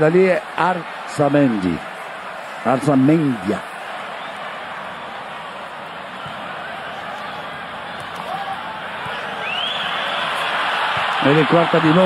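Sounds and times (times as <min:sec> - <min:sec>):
stadium crowd hubbub: 0:00.0 - 0:12.0.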